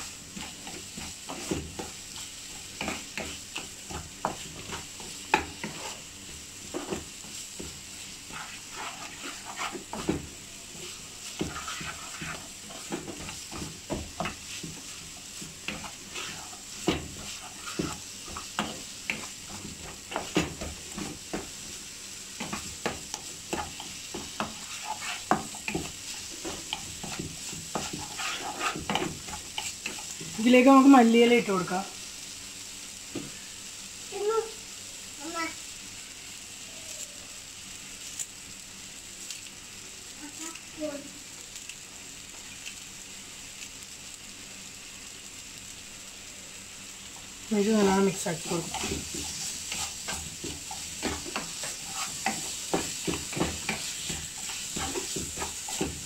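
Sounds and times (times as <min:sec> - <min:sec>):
spatula scraping and knocking pan: 0:00.0 - 0:30.9, 0:47.8 - 0:56.0
masala sizzling in oil: 0:00.0 - 0:56.0.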